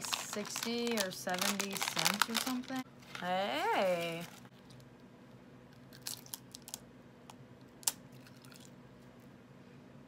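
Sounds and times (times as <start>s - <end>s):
seaweed snack crunching: 5.9s - 6.8s.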